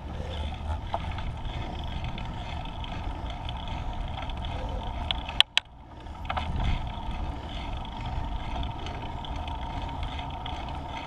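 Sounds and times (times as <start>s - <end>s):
scooter wheels rumbling: 0.0s - 11.0s
wind on microphone: 0.0s - 11.0s.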